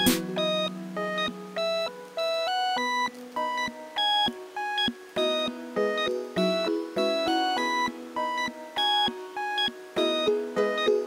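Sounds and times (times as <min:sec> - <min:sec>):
light electronic melody: 0:00.0 - 0:11.0.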